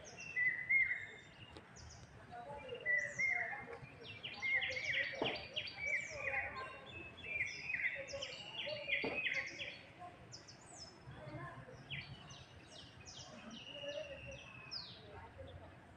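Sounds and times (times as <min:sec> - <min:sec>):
birds chirping and chattering: 0:00.0 - 0:15.9.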